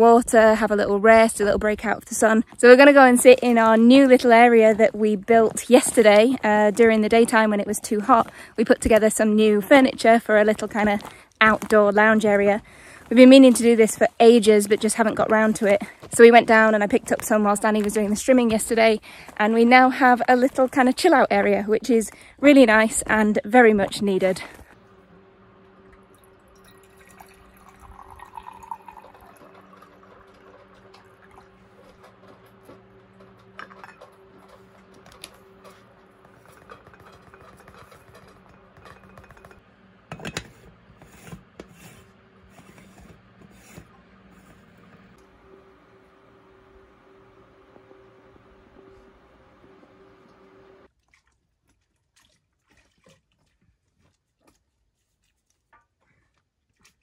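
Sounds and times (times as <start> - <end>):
steady low hum: 0.0 - 50.9
water pouring into pot: 25.9 - 35.4.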